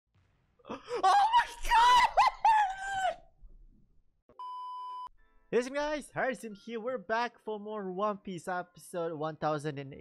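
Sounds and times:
man laughing: 0.7s - 3.2s
man shrieking in falsetto: 0.8s - 3.3s.

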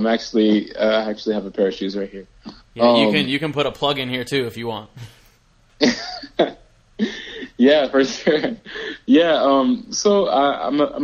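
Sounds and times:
man coughing: 4.9s - 5.4s.

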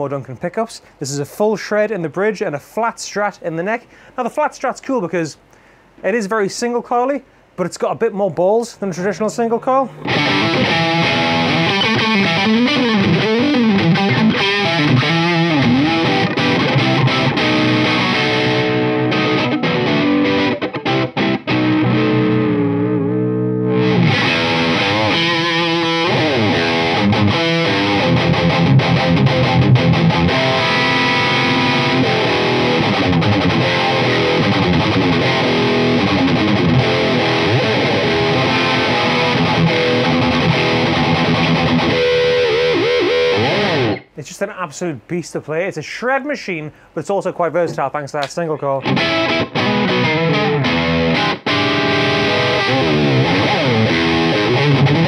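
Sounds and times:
distorted electric guitar lead: 9.9s - 44.2s, 48.8s - 55.0s.

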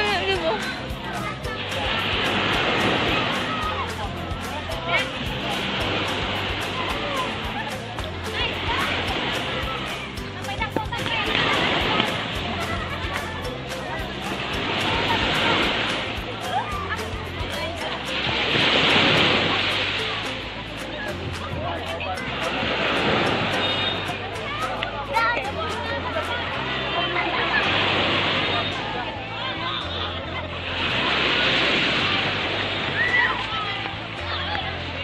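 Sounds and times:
background music with bass line: 0.0s - 35.0s
people's voices: 0.0s - 35.0s.

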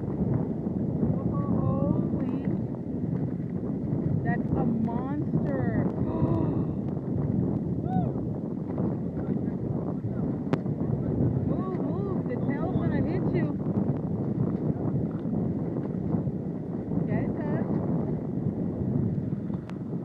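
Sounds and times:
wind rumbling on microphone: 0.0s - 20.0s.

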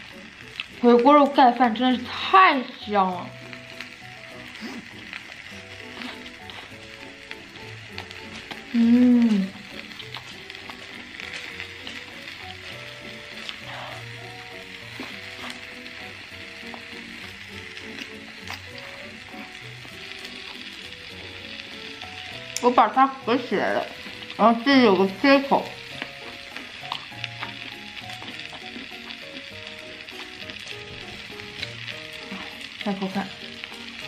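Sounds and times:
food sizzling and crackling: 0.0s - 34.0s
soft background music: 0.0s - 34.0s
person humming: 8.6s - 9.8s.

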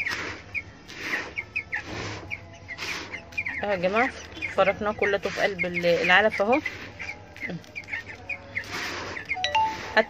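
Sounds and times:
chicks peeping: 0.0s - 10.0s
short clear tones: 9.4s - 10.0s.

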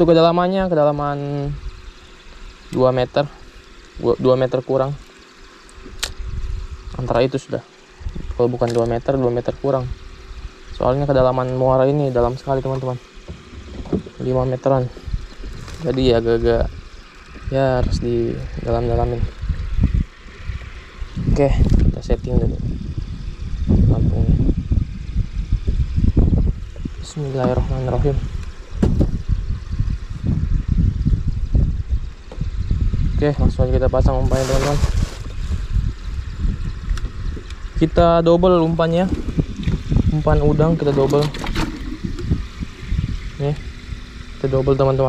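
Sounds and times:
wind rumbling on microphone: 5.8s - 7.4s, 8.0s - 45.0s
water lapping against boat hull: 12.2s - 17.6s, 39.0s - 44.4s
man speaking: 27.0s - 28.3s.

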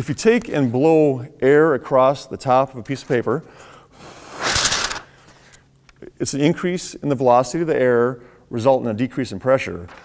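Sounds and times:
breath blown across paper: 4.0s - 5.6s.

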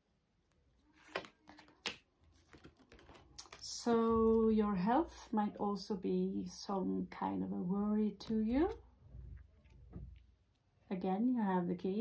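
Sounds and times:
playing cards clicking and tapping: 1.0s - 3.6s.

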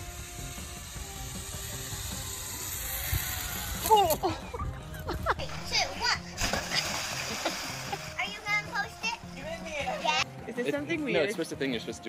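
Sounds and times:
rushing water: 5.4s - 10.2s
splash into pool: 6.4s - 8.3s.

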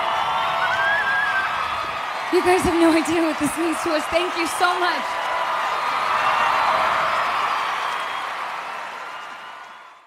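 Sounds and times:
audience applauding and cheering: 0.0s - 10.0s.

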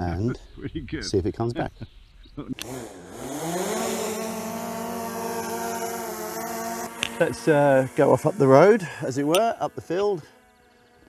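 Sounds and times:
drone propellers humming: 2.1s - 11.0s.

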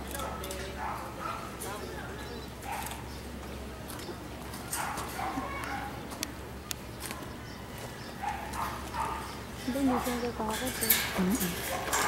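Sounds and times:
distant voices calling out: 0.0s - 12.0s.

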